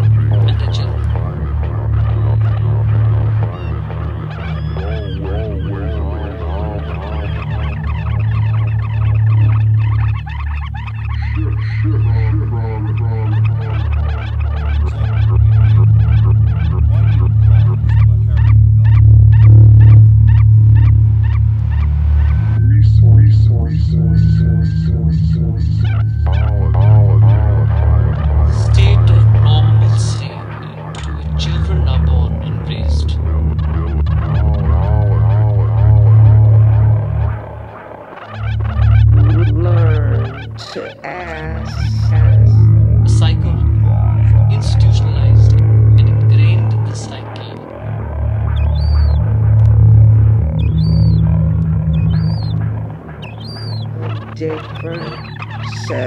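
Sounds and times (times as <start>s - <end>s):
low electronic drone: 0.0s - 56.0s
warbling chirp-like sounds: 0.0s - 56.0s
sharp clicks pulse: 28.8s - 35.6s.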